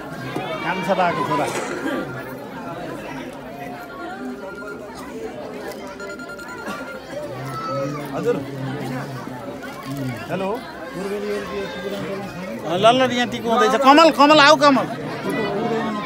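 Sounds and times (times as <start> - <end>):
crowd talking: 0.0 - 16.0.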